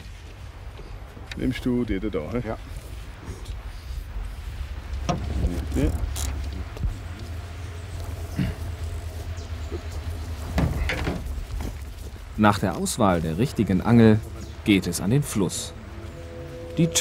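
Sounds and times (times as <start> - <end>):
steady low rumble: 0.0 - 17.0
two men talking: 5.1 - 6.8, 12.3 - 15.8.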